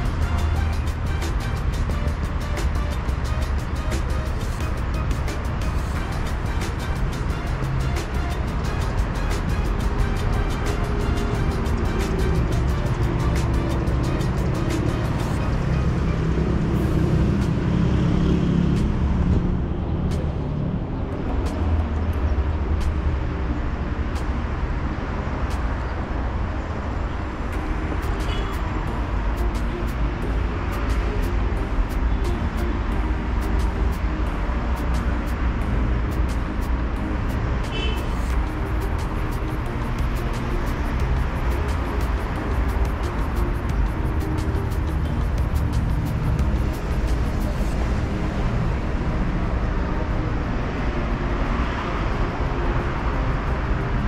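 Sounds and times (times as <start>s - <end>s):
music playing: 0.0s - 54.0s
road traffic rumble: 0.0s - 54.0s.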